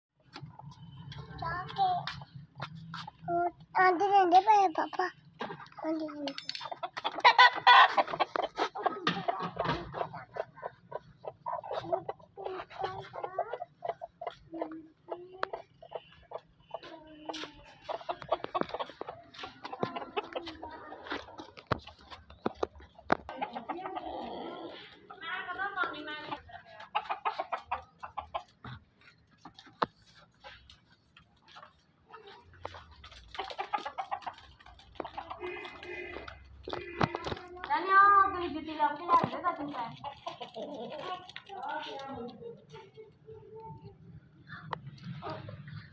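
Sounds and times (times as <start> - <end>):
chickens clucking: 0.2 - 45.9.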